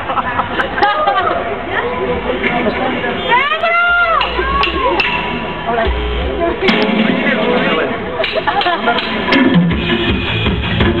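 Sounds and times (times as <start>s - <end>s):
low bass notes: 3.9s - 11.0s.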